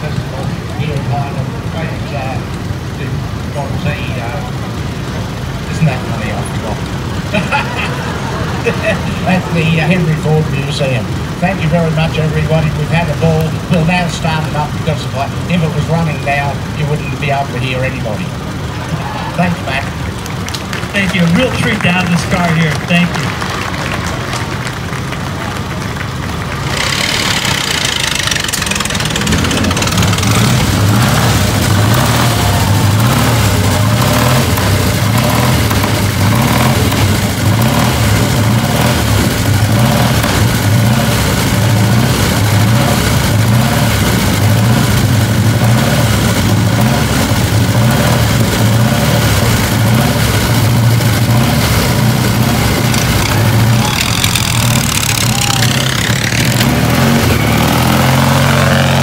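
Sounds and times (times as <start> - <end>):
racing car engine revving: 0.0 - 59.0.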